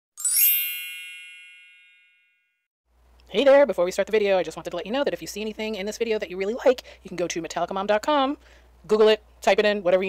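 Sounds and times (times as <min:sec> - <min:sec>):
bright shimmering chime: 0:00.2 - 0:02.5.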